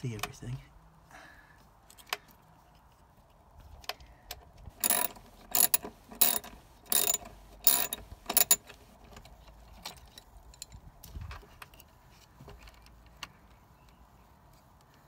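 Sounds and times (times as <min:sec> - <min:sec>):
ratchet wrench clicking: 0:04.7 - 0:08.7.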